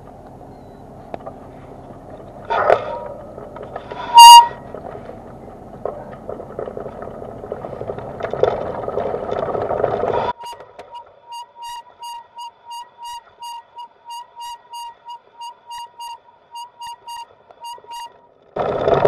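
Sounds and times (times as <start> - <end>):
road and wind rumble: 0.0 - 19.0
pulsing high-pitched squeal: 3.8 - 4.8, 10.3 - 18.3.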